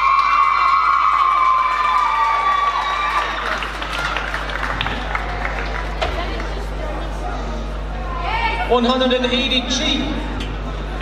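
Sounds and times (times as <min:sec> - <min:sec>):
audience applause and cheering: 0:00.0 - 0:07.2.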